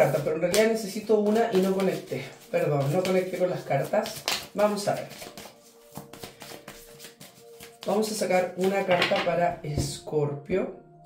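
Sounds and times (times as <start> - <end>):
cards being shuffled: 0.0 - 8.9.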